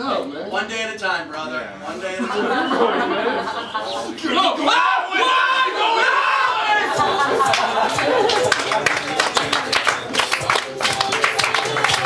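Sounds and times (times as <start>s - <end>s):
music: 6.8s - 12.0s.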